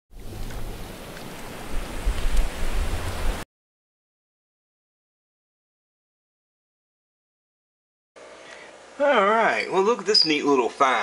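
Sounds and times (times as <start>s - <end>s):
rushing water: 0.1s - 3.4s.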